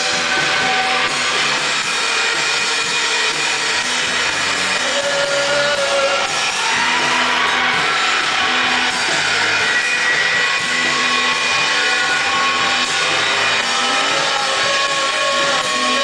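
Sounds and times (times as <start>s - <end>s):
bass guitar: 0.0s - 16.0s
drum kit: 0.0s - 16.0s
electric guitars: 0.0s - 16.0s.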